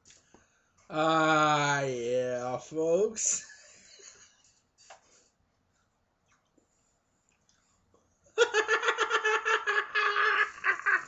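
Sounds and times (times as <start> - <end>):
man laughing in falsetto: 8.4 - 11.0.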